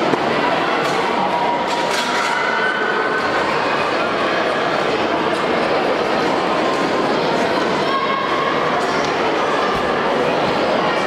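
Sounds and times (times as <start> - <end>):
many voices chattering: 0.0 - 11.0.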